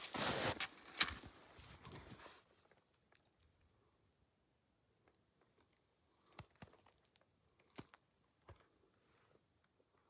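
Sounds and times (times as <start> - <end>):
footsteps crunching in snow: 0.0 - 2.4.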